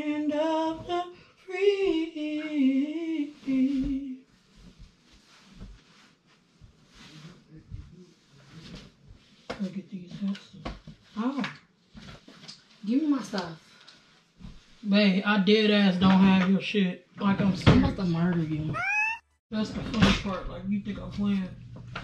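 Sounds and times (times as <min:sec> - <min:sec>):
rustling of clothes and bedding: 0:00.0 - 0:22.0.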